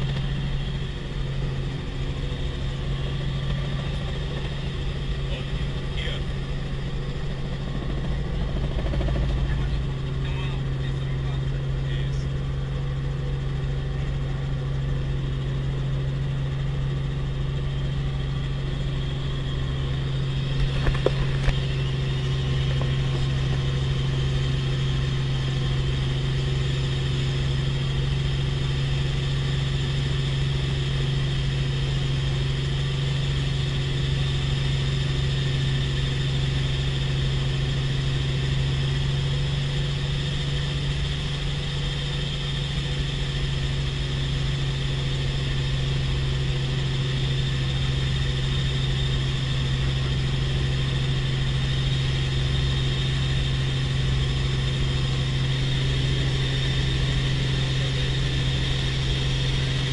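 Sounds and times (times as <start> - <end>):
helicopter engine and rotor drone: 0.0 - 59.9.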